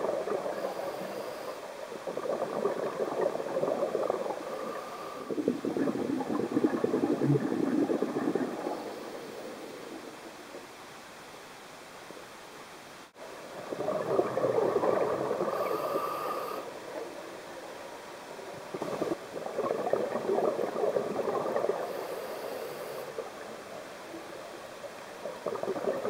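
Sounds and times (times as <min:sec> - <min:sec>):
low steady hiss: 0:00.0 - 0:26.0
air bubbling underwater: 0:05.3 - 0:09.1, 0:13.6 - 0:15.8.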